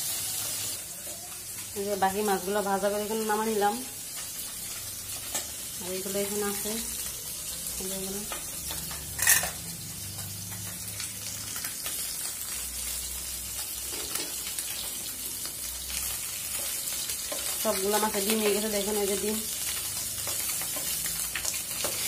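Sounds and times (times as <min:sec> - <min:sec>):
fish sizzling in hot oil: 0:00.0 - 0:22.0.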